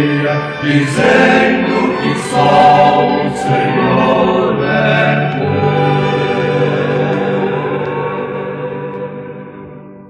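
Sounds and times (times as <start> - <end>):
choir singing a hymn: 0.0 - 9.4
instrumental accompaniment: 0.0 - 10.0.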